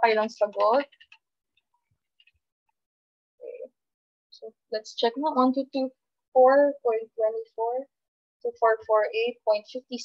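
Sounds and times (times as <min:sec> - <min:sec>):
computer keyboard clicks: 0:00.3 - 0:01.2.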